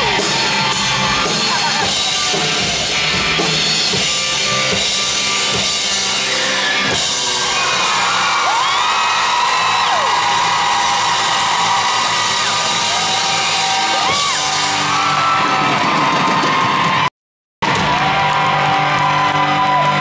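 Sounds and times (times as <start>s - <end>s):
audience whooping and screaming: 0.0s - 3.0s, 6.6s - 20.0s
live rock band playing: 0.0s - 20.0s.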